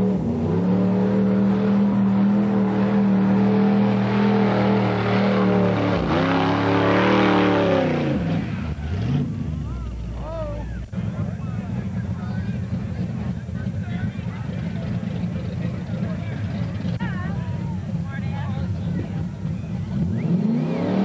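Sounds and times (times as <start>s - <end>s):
truck engine revving: 0.0s - 21.0s.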